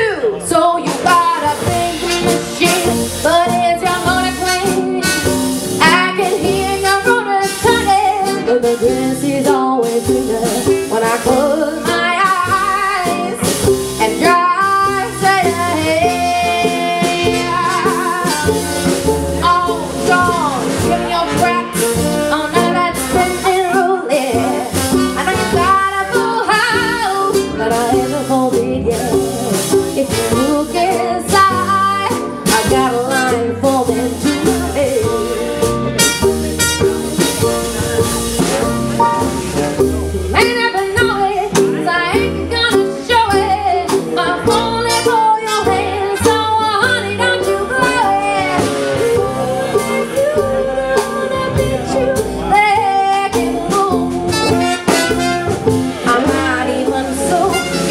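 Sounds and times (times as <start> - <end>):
drums: 0.0 - 57.9
mandolin: 0.0 - 57.9
upright bass: 0.0 - 57.9
trumpet: 1.0 - 8.8, 15.0 - 27.3, 32.4 - 40.8, 44.4 - 46.9, 47.5 - 50.4, 53.7 - 56.6, 57.2 - 57.9
trombone: 1.0 - 41.5, 44.2 - 57.9.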